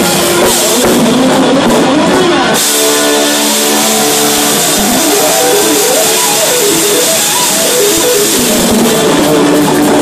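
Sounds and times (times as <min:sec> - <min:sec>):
distorted electric guitar: 0:00.0 - 0:10.0
rock band playing: 0:00.0 - 0:10.0.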